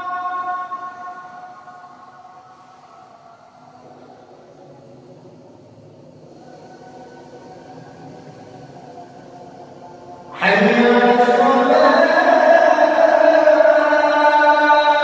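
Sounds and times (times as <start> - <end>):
call to prayer singing: 0.0 - 4.0, 7.5 - 15.0
faint wavering drawn-out tones: 0.0 - 15.0.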